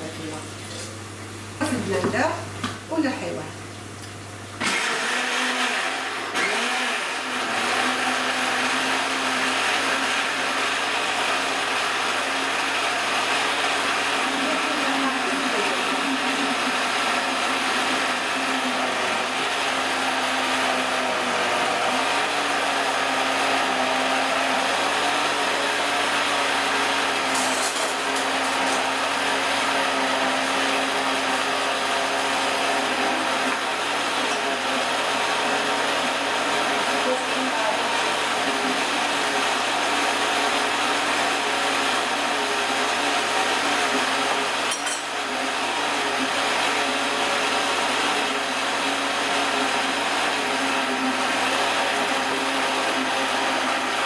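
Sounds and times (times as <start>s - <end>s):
electric blender running: 0.0s - 54.0s.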